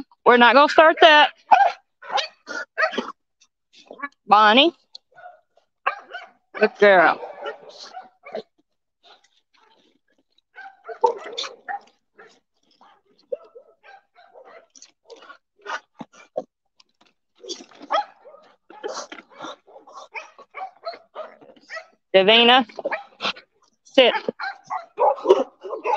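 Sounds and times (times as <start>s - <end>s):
dogs whining and barking: 1.0s - 3.2s, 5.1s - 16.5s, 17.4s - 22.1s, 22.7s - 25.9s
dogs chewing treats: 7.3s - 25.9s.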